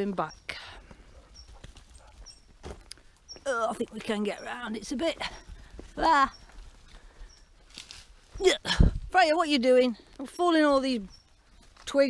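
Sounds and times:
dogs rustling through brushwood: 0.8 - 8.4.

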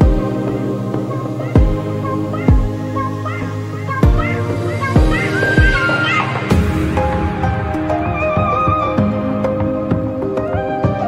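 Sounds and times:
gliding melody: 0.0 - 11.0
deep drum hits: 5.0 - 5.8.

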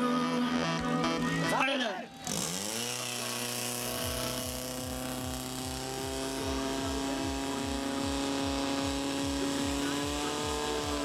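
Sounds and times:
music: 0.0 - 11.0
pump engine running at high revs: 0.0 - 11.0.

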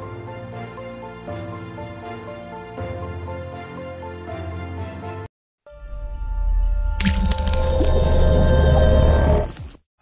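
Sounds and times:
splashy hit: 7.0 - 8.3.

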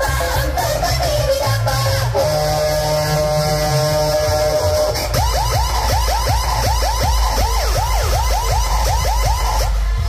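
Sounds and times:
dance music with heavy bass: 0.0 - 10.0.

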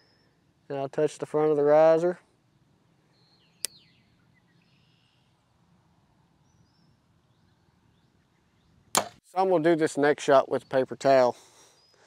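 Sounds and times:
faint outdoor background: 0.0 - 12.0
bow string snapping: 8.9 - 9.2.

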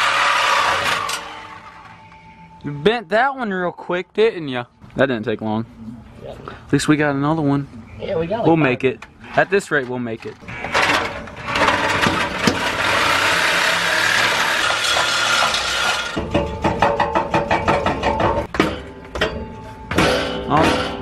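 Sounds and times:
reciprocating saw cutting pipe: 0.0 - 1.8, 11.4 - 16.2.

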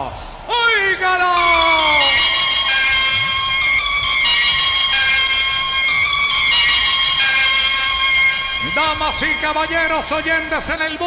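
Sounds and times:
radio jingle chords: 1.4 - 11.0.

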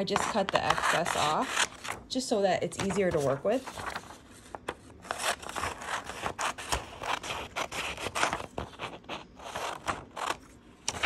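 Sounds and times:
scissors snipping paper: 0.0 - 2.0, 5.0 - 11.0.

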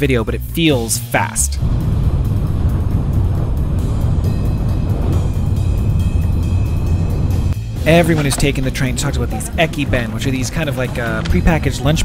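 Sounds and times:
background music: 0.0 - 12.0
train running rumble: 1.6 - 12.0.

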